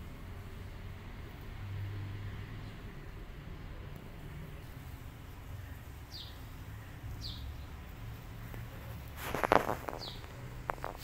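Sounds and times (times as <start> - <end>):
bird chirping: 5.3 - 11.0.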